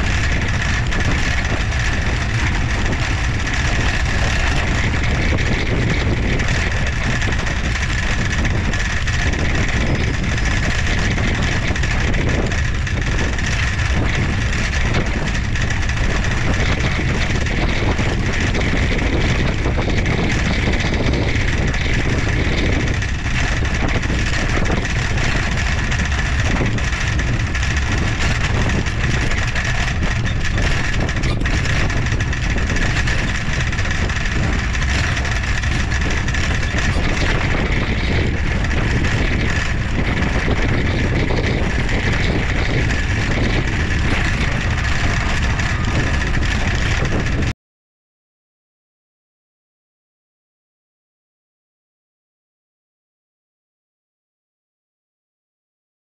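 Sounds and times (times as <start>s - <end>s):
tyre noise on paved path: 0.0s - 47.5s
wind on microphone: 0.0s - 47.5s.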